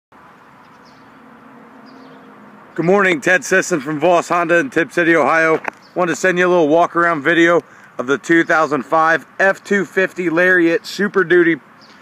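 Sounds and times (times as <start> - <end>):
faint outdoor background hum: 0.2 - 12.0.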